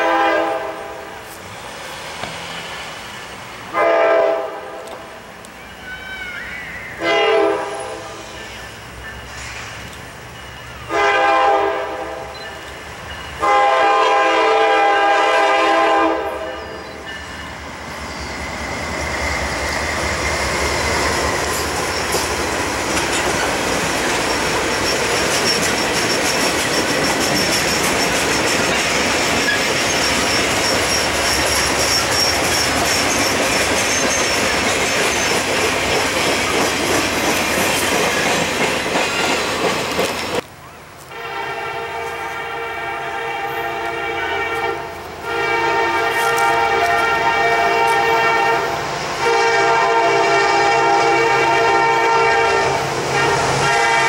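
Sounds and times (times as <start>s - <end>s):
locomotive horn: 0.0s - 1.2s, 3.7s - 5.0s, 5.6s - 8.4s, 10.8s - 12.3s, 13.4s - 17.0s, 41.0s - 54.0s
train wheels clickety-clack: 16.8s - 40.5s, 46.0s - 49.0s
thin wheel squeal: 29.5s - 34.5s.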